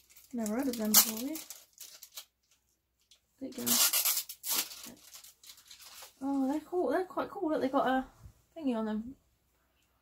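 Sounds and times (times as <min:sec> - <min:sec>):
plastic packaging rustling: 0:00.0 - 0:06.6.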